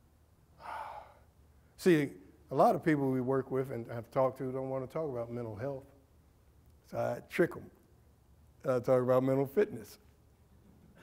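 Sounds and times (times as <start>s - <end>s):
man breathing in: 0.6s - 1.3s
man speaking: 1.8s - 5.9s, 6.8s - 7.8s, 8.6s - 10.0s.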